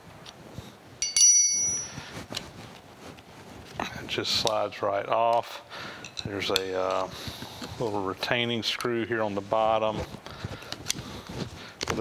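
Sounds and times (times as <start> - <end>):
faint handling sounds: 0.2 - 5.4, 6.0 - 12.0.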